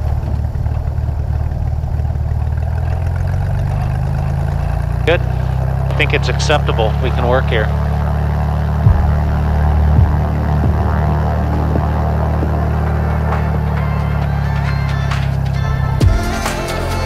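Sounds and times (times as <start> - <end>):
light aircraft engine droning: 0.0 - 17.0
music with heavy drum beat: 8.8 - 9.2, 10.0 - 17.0.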